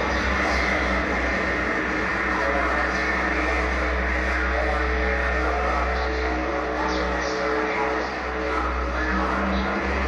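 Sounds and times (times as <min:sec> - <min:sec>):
deep low drone: 0:00.0 - 0:10.0
electronic noise wall: 0:00.0 - 0:10.0.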